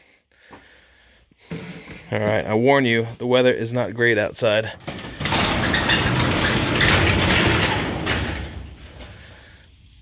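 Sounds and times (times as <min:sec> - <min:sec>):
garage door rollers rumbling: 0:04.6 - 0:09.6.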